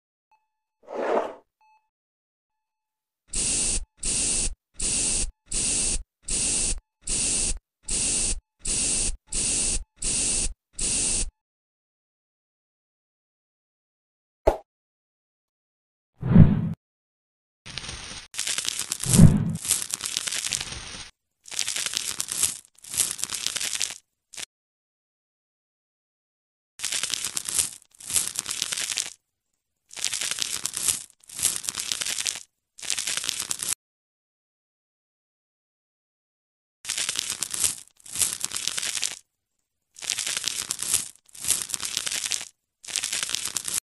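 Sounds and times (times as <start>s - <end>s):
spray bottle spritzes: 3.3s - 11.3s, 26.8s - 29.2s, 29.9s - 33.8s, 36.9s - 39.2s, 40.0s - 43.8s.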